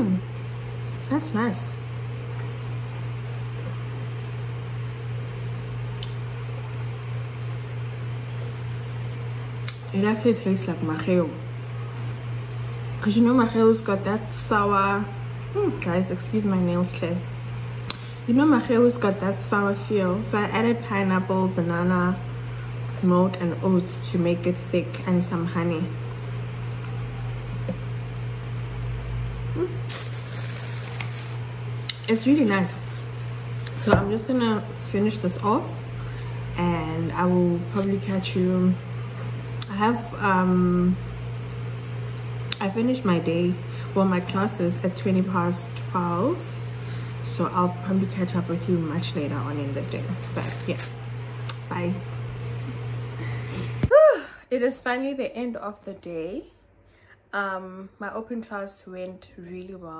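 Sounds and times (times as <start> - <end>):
low room hum: 0.0 - 59.9.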